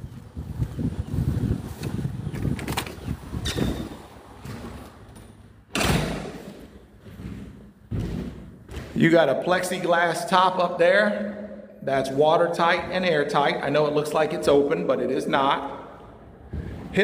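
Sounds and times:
door thumping shut: 5.7s - 6.6s.

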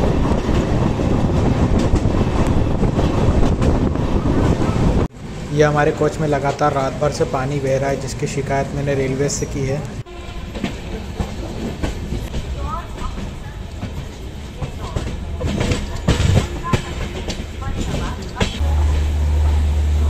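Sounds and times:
wheels clacking over rail joints: 0.0s - 19.8s
train wheels rumbling on track: 0.0s - 20.0s.

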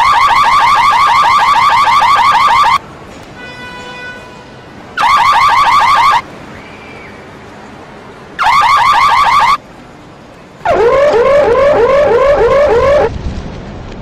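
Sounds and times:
car alarm chirps: 0.0s - 2.8s, 5.0s - 6.2s, 8.4s - 9.6s, 10.7s - 13.1s.

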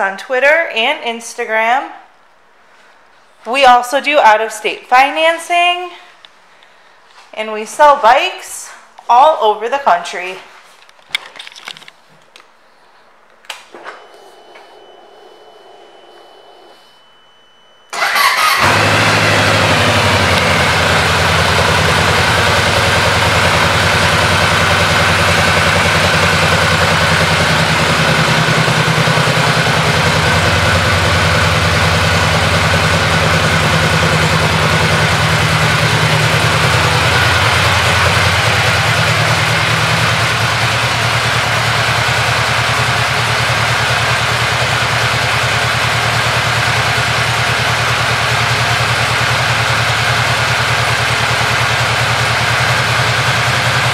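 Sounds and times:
motorcycle engine starting and idling: 13.6s - 17.1s, 17.9s - 53.9s.

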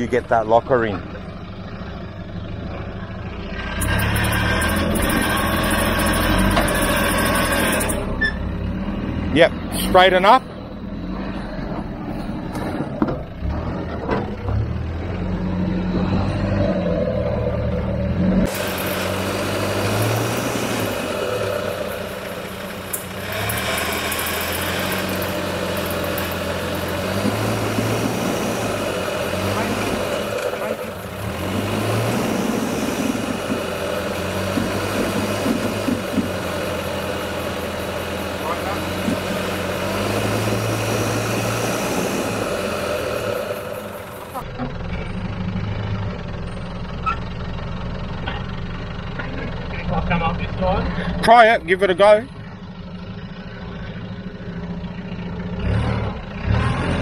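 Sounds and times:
diesel engine revving: 0.0s - 57.0s.

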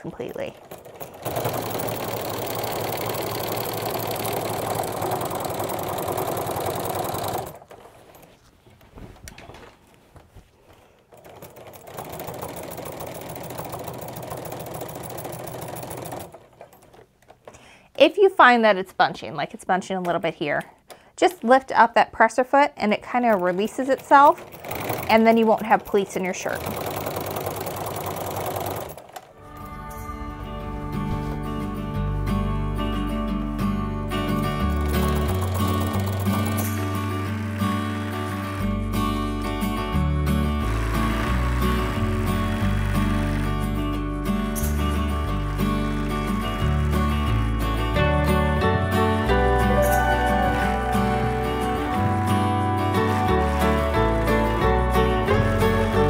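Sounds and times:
sewing machine stitching: 0.0s - 8.4s, 11.1s - 17.1s, 23.1s - 29.3s, 34.4s - 48.4s, 49.2s - 56.0s
background music: 29.3s - 56.0s.

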